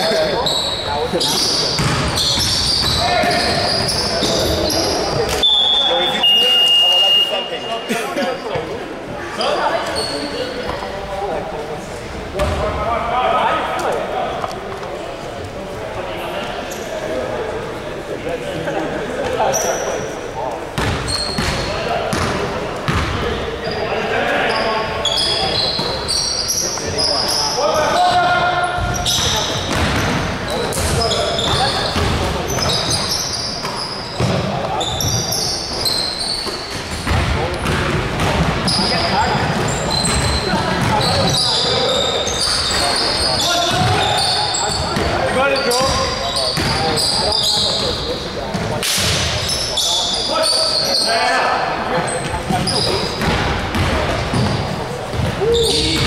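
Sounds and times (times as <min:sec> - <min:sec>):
players calling indistinctly: 0:00.0 - 0:10.9, 0:18.8 - 0:56.0
sneakers squeaking: 0:00.0 - 0:11.4, 0:12.3 - 0:12.8, 0:16.3 - 0:17.8, 0:18.8 - 0:56.0
basketball bouncing on hardwood: 0:01.8 - 0:03.4.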